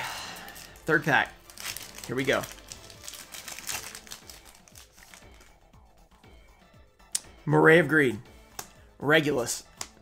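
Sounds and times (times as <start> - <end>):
foil wrapper crinkling: 0.4 - 5.5.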